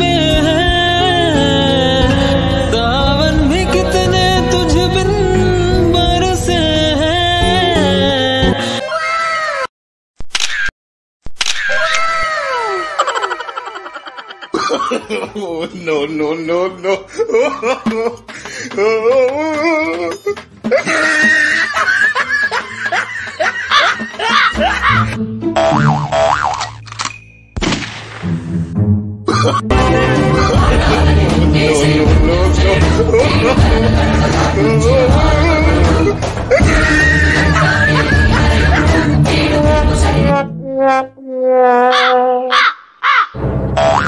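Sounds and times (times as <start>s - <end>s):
background music with bass line: 0.0s - 8.6s, 28.5s - 40.8s
wobbling boing: 25.6s - 26.6s.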